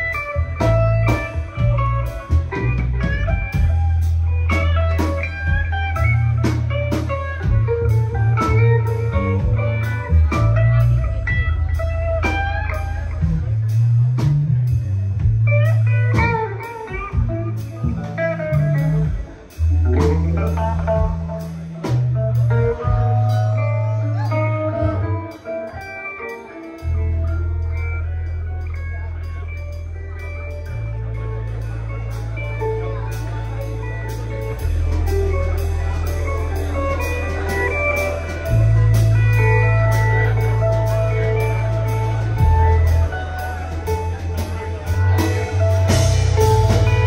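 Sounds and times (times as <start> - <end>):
bass line: 0.0 - 47.0
drum kit with cymbals: 0.0 - 47.0
electric guitar lead: 0.0 - 47.0.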